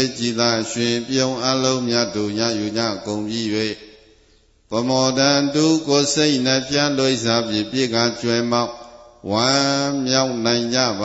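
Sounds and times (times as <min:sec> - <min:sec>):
man chanting on held notes: 0:00.0 - 0:03.9, 0:04.7 - 0:11.0.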